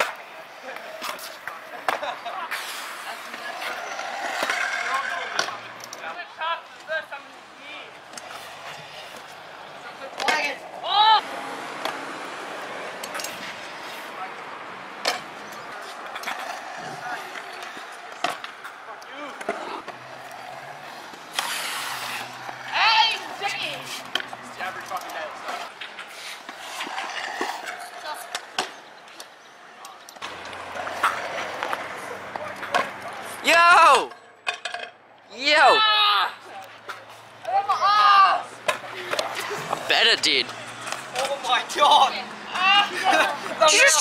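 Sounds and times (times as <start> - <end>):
scooter wheels rolling on concrete: 0.0 - 44.0.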